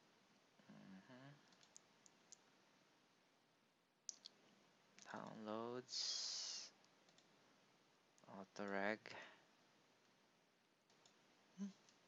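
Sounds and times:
man humming: 0:00.6 - 0:01.4, 0:11.6 - 0:11.8
computer mouse click: 0:01.5 - 0:02.4, 0:07.1 - 0:07.3, 0:10.9 - 0:11.2.

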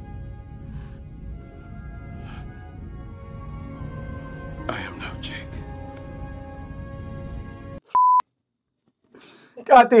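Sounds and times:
short electronic beep: 0:08.0 - 0:08.2.

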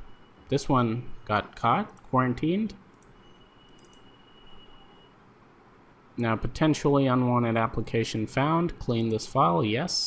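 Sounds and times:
soft quick clicks: 0:02.9 - 0:04.1.

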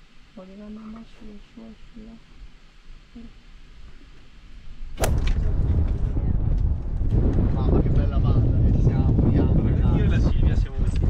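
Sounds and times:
wind buffeting microphone: 0:04.8 - 0:11.0
sharp swish: 0:05.0 - 0:05.4.

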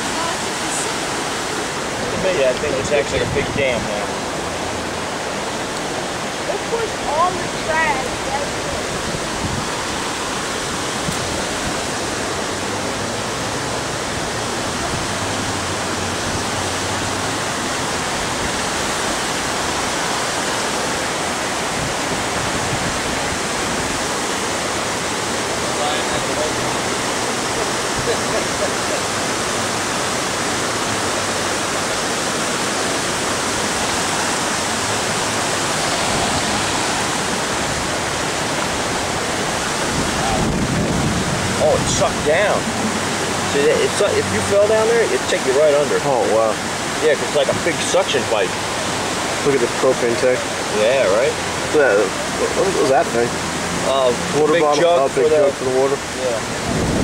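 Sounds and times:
floodwater rushing: 0:00.0 - 0:57.0.

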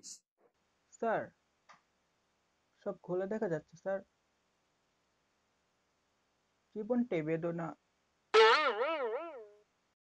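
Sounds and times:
cartoon boing sound effect: 0:08.4 - 0:09.6.

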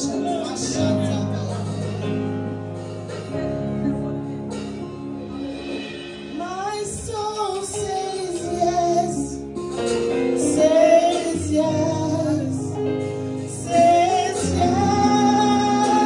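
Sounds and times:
sustained instrumental accompaniment: 0:00.0 - 0:16.0
woman singing gospel song: 0:06.4 - 0:09.5, 0:10.4 - 0:12.8, 0:13.4 - 0:16.0.

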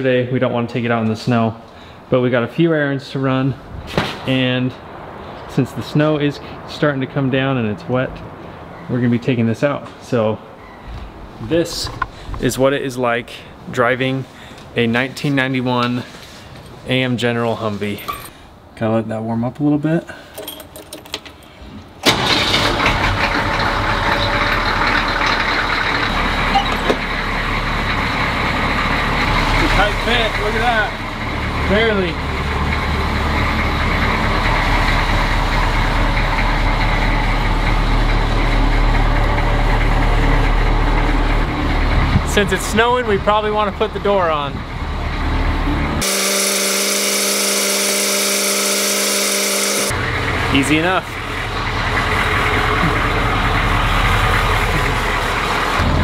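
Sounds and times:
diesel engine starting and idling: 0:22.0 - 0:56.0
steady electric buzz: 0:46.0 - 0:50.0.

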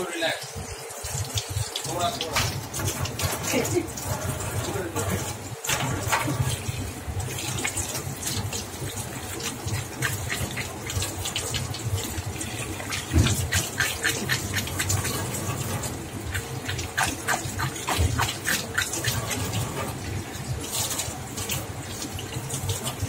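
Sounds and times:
tap water running: 0:00.0 - 0:23.0.

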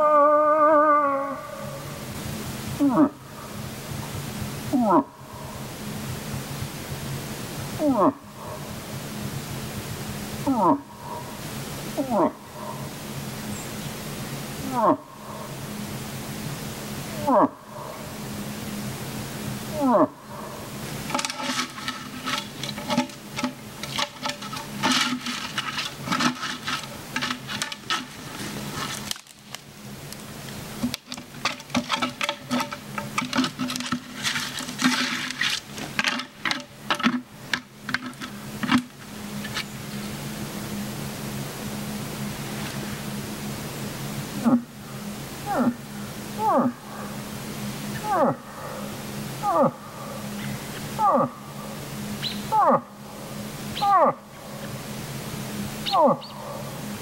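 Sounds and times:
moose call imitation moans: 0:00.0 - 0:02.0, 0:02.8 - 0:03.6, 0:04.7 - 0:05.6, 0:07.8 - 0:08.7, 0:10.4 - 0:11.4, 0:12.0 - 0:12.9, 0:14.6 - 0:15.6, 0:17.1 - 0:18.2, 0:19.7 - 0:29.1, 0:44.4 - 0:44.8, 0:45.4 - 0:51.8, 0:52.4 - 0:53.0, 0:53.8 - 0:54.6, 0:55.8 - 0:56.7
dense crackling and rustling: 0:20.8 - 0:39.7.

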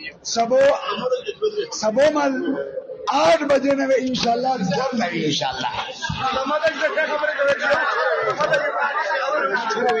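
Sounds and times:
men's voices talking over one another: 0:00.0 - 0:10.0.

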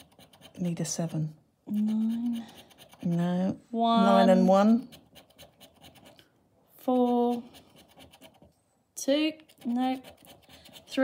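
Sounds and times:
plastic chip scratching a card: 0:00.0 - 0:03.4, 0:04.8 - 0:06.3, 0:06.9 - 0:08.5, 0:09.4 - 0:11.0.

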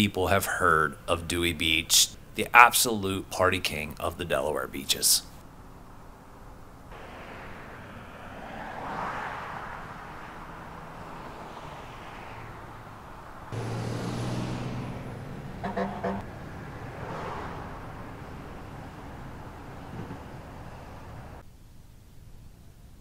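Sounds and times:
cars passing: 0:05.4 - 0:21.4
nearby engine hum: 0:05.4 - 0:21.4.

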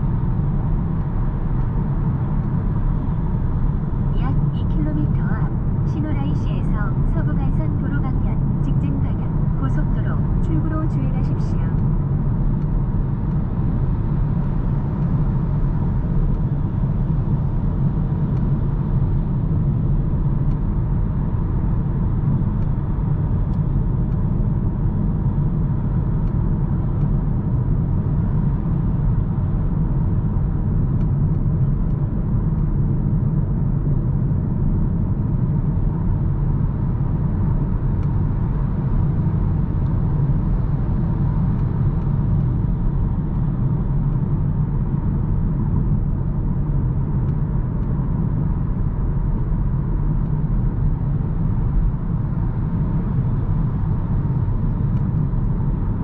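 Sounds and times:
road and tyre noise inside car: 0:00.0 - 0:56.0.

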